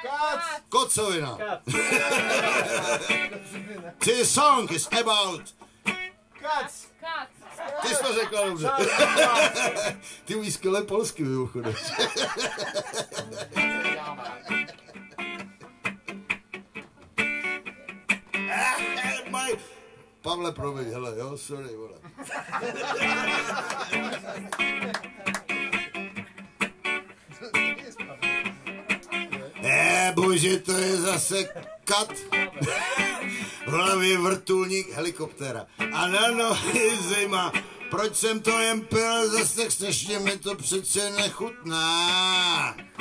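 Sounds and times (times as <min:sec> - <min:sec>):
man laughing: 0:01.7 - 0:04.0, 0:07.8 - 0:10.2, 0:11.6 - 0:15.8, 0:18.5 - 0:19.3, 0:22.0 - 0:25.4, 0:27.2 - 0:28.5, 0:30.8 - 0:33.5, 0:36.3 - 0:37.2
acoustic guitar strumming: 0:01.7 - 0:06.4, 0:08.8 - 0:10.3, 0:12.0 - 0:20.4, 0:22.9 - 0:43.0
man talking: 0:03.5 - 0:05.6, 0:07.8 - 0:12.0, 0:13.2 - 0:14.7, 0:18.5 - 0:22.1, 0:29.3 - 0:42.8.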